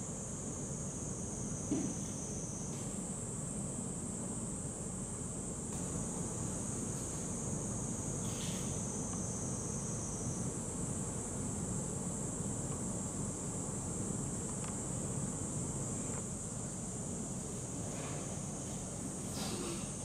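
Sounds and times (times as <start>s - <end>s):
high-pitched insect drone: 0.0s - 17.8s.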